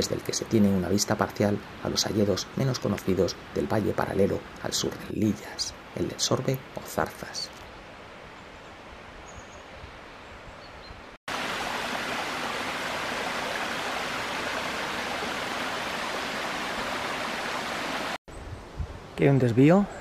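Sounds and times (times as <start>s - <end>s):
faint forest ambience: 0.0s - 20.0s
brook running over stones: 11.3s - 18.2s.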